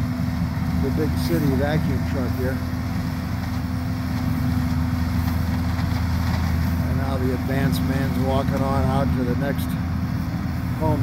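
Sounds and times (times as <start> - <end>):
vacuum truck engine and blower drone: 0.0 - 11.0.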